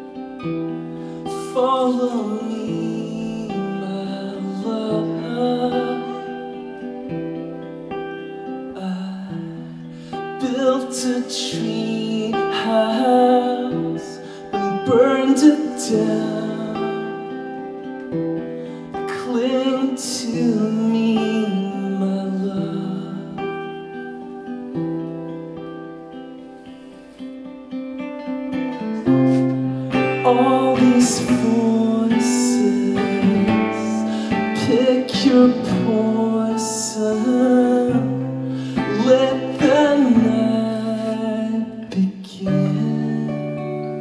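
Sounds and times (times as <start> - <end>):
acoustic guitar playing: 0.0 - 44.0
man singing: 1.1 - 7.2, 8.4 - 18.1, 18.7 - 24.1, 28.7 - 44.0.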